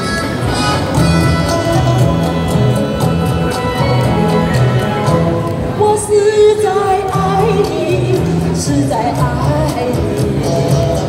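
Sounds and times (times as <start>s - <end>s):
instrumental backing track: 0.0s - 11.0s
woman singing into a microphone: 5.7s - 11.0s.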